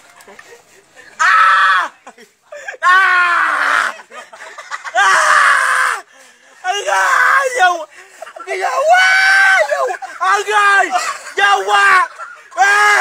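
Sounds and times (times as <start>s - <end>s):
person screaming: 2.8s - 4.0s, 5.0s - 6.0s, 6.6s - 7.8s, 8.5s - 13.0s.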